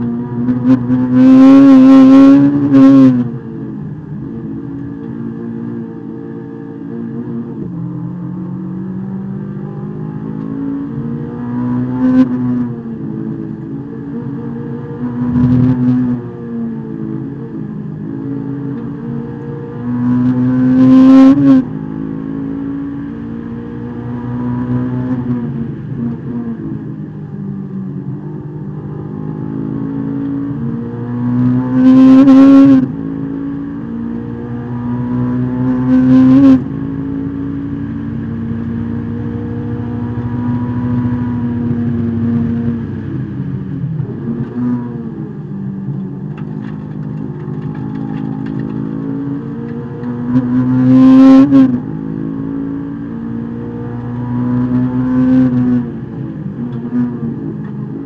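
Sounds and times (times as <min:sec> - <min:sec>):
car engine revving through gears: 0:00.0 - 0:58.0.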